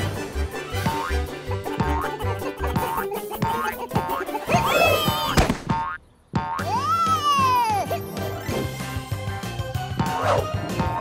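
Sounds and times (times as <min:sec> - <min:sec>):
bouncy cartoon music: 0:00.0 - 0:11.0.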